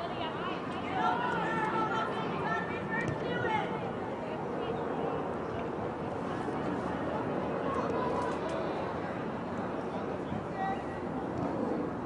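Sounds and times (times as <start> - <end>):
outdoor background noise: 0.0 - 12.0
spectators chattering: 0.0 - 12.0.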